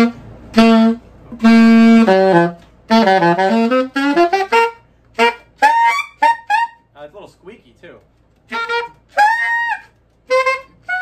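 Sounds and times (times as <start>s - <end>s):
alto saxophone notes: 0.0s - 6.8s, 8.5s - 11.0s.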